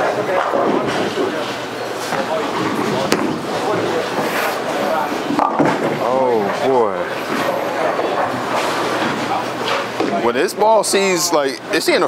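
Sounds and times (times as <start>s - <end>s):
people chattering: 0.0s - 12.0s
bowling ball striking pins: 2.1s - 4.3s, 5.2s - 6.6s.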